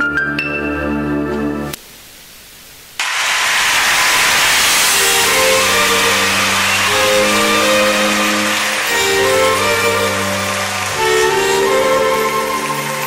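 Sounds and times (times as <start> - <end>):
loud rushing noise: 3.0 - 13.0
held string chords: 5.0 - 13.0.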